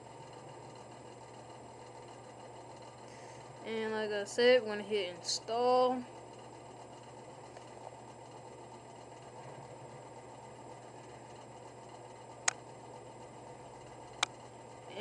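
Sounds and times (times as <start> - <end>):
room hiss and hum: 0.0 - 15.0.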